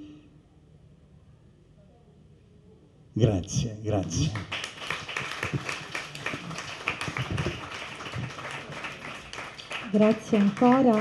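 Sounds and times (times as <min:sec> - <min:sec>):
audience clapping: 0:04.0 - 0:11.0.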